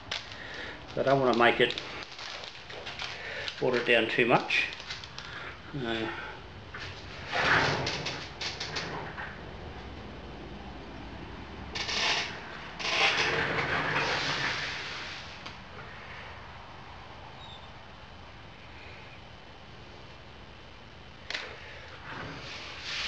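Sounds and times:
rustling: 0:00.0 - 0:05.4
room hiss: 0:09.6 - 0:23.0.

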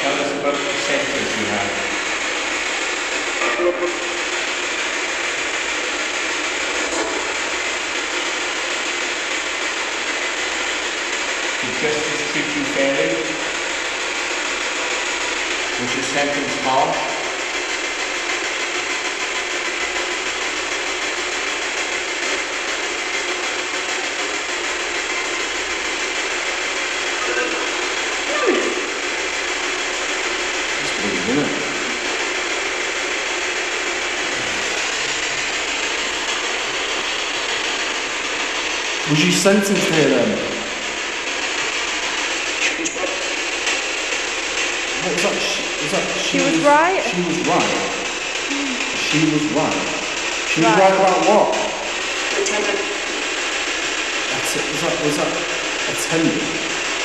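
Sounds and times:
choppy radio static: 0:00.0 - 0:57.0
voice-like radio snatches: 0:03.3 - 0:04.5, 0:06.7 - 0:07.4, 0:27.2 - 0:29.0, 0:45.0 - 0:53.0.

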